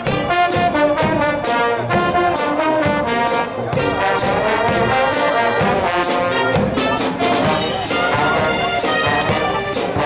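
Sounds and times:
drum beats: 0.0s - 10.0s
marching brass band playing: 0.0s - 10.0s.

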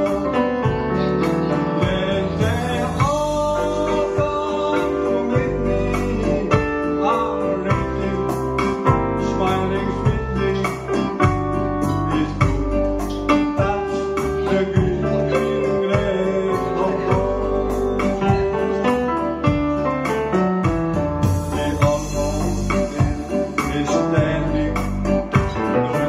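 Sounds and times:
man singing into a microphone: 0.0s - 19.6s, 20.9s - 26.0s
keyboard ballad accompaniment: 0.0s - 26.0s.

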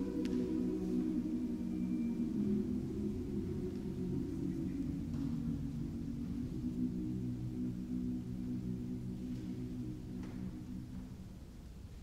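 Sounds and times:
choir singing soft chords: 0.0s - 12.0s.

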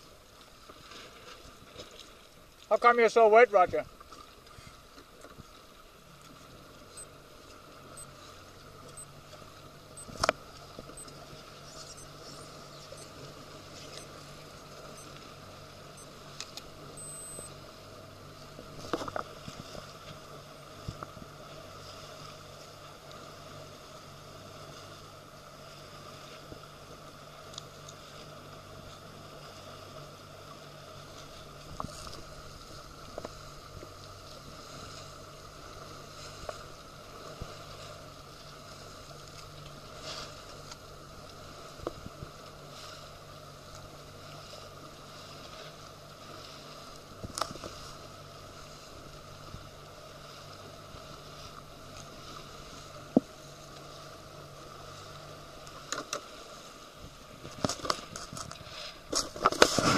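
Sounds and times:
water: 0.0s - 59.9s
wind: 0.0s - 59.9s
boat motor humming: 3.8s - 57.6s.

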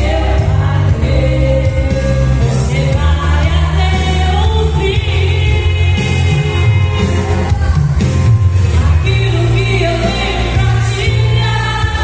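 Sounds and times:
woman singing into a microphone: 0.0s - 7.9s, 8.7s - 12.0s
instrumental music with steady bass: 0.0s - 12.0s.

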